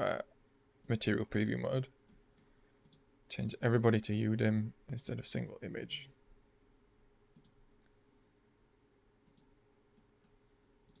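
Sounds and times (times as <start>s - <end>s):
computer mouse clicks: 1.6s - 3.6s, 7.3s - 7.6s, 9.2s - 11.0s.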